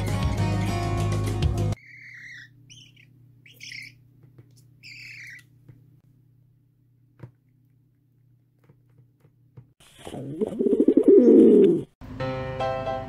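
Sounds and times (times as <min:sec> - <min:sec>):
background music: 0:00.0 - 0:01.8
young magpie begging calls: 0:01.8 - 0:04.0, 0:04.8 - 0:05.4.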